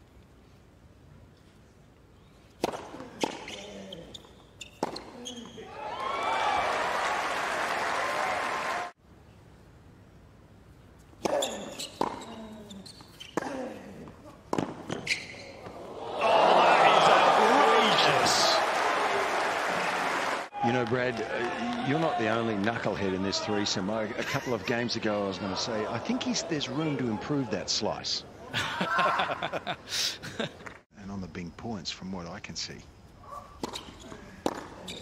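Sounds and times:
racket hitting tennis ball: 2.6s - 3.5s, 11.2s - 12.3s, 14.5s - 15.8s, 33.6s - 34.9s
crowd cheering and applause: 5.7s - 9.0s, 15.8s - 23.6s.

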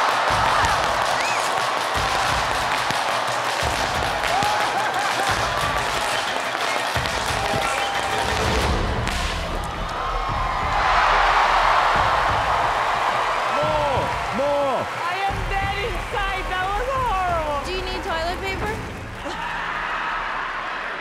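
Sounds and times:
audience applauding and cheering: 0.0s - 21.0s
background music: 0.0s - 21.0s.

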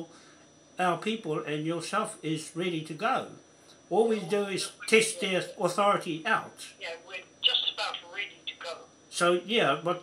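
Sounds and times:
voice over telephone: 4.0s - 5.8s, 6.8s - 8.8s.

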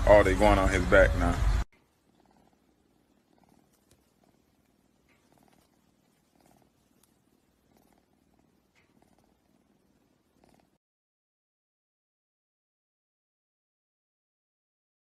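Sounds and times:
cat purring: 1.7s - 10.8s.

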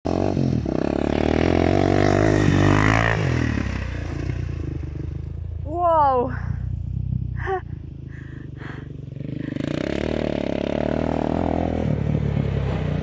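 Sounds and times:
quad bike engine revving: 0.1s - 13.0s.

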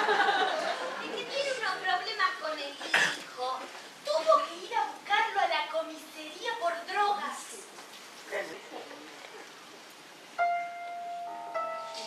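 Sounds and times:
women's voices on stage: 0.8s - 7.8s.

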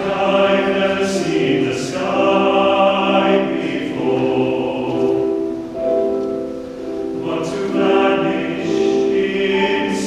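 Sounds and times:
mixed choir singing: 0.0s - 5.6s, 7.1s - 10.0s.

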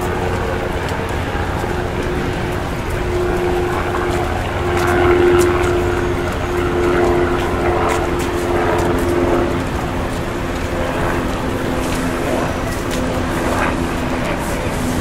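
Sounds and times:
engine hum: 0.0s - 15.0s
murmur of voices: 0.0s - 15.0s
traffic rumble: 0.0s - 15.0s.

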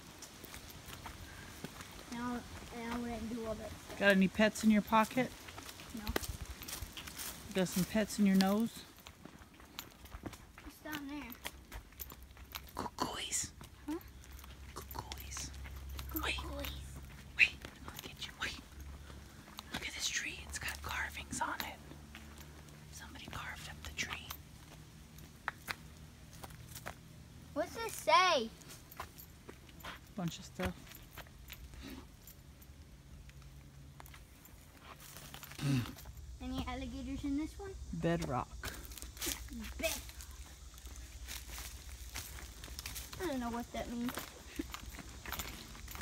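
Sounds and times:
faint background hum: 0.0s - 46.0s
footsteps on a trail: 0.0s - 46.0s.

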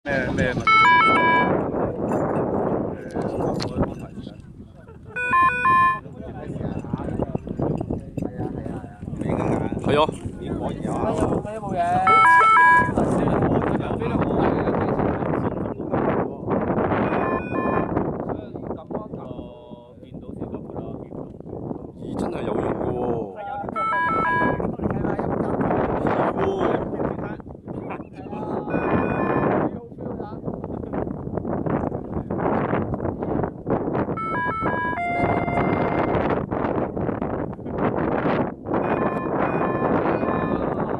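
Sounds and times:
wind blowing across microphone: 0.0s - 40.9s
short electronic beep: 0.7s - 1.6s, 5.2s - 6.0s, 12.1s - 13.0s, 17.1s - 17.9s, 34.2s - 36.2s
faint long electronic beeps: 5.2s - 6.0s.

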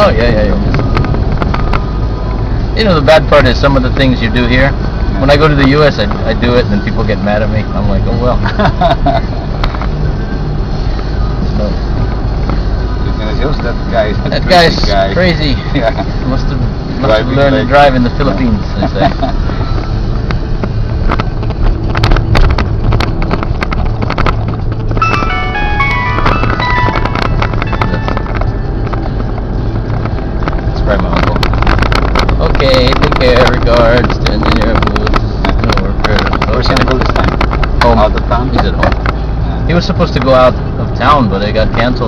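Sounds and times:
vehicle engine and road rumble: 0.0s - 42.0s
descending beeping notes: 25.0s - 29.5s.

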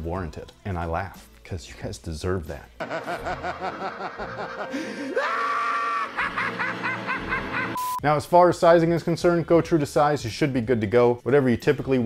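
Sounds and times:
cartoon character laughing: 2.8s - 7.8s.

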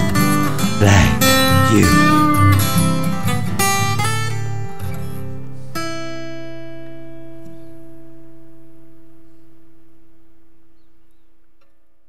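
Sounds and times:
acoustic guitar chord ringing: 0.0s - 8.9s.

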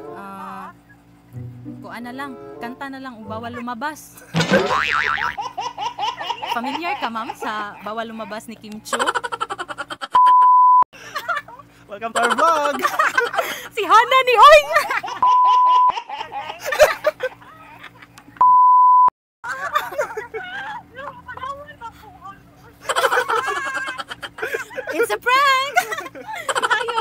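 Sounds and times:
laughter: 5.4s - 8.2s, 8.9s - 13.7s, 14.5s - 18.4s, 19.4s - 21.7s, 22.8s - 27.0s
censor bleep: 10.2s - 10.8s, 18.4s - 19.1s.

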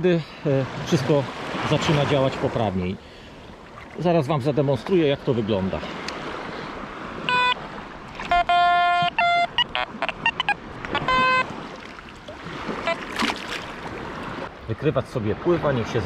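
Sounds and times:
sea water splashing: 0.7s - 14.6s
metal detector beeping: 7.3s - 7.6s, 8.2s - 11.5s, 12.8s - 13.1s.

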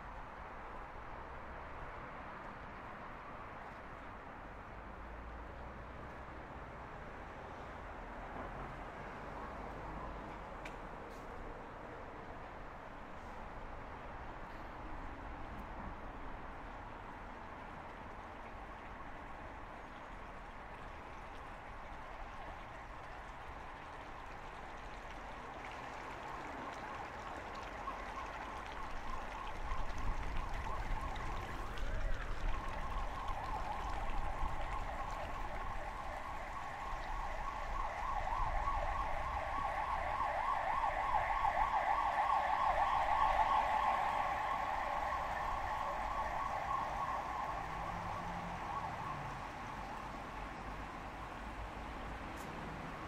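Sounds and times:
siren wailing: 27.6s - 50.4s.

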